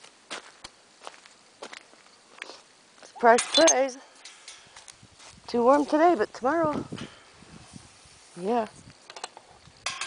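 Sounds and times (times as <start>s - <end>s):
soft footsteps on dirt: 0.0s - 9.0s.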